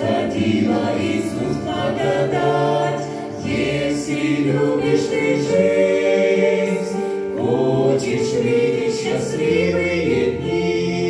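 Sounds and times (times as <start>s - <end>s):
mixed choir singing a hymn: 0.0s - 11.0s.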